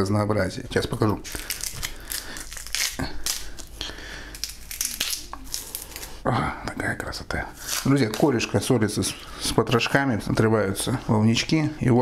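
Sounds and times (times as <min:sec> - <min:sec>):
dried fish tearing and crackling: 0:01.3 - 0:06.2.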